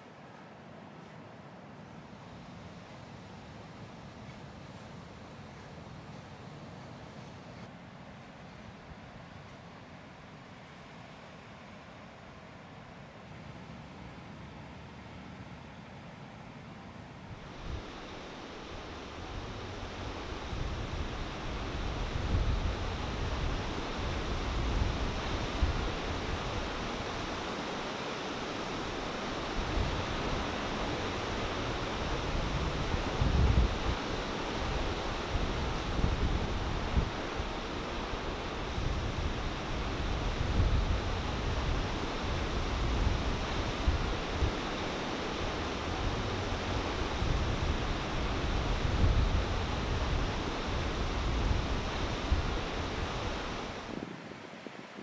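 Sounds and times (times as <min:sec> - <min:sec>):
ocean surf rushing: 0:17.3 - 0:55.0
wind buffeting microphone: 0:17.4 - 0:54.3.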